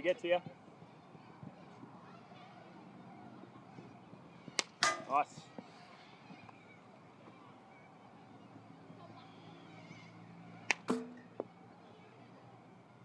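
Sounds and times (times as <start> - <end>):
baseball bat cracking ball: 4.6 - 5.3, 10.7 - 11.5.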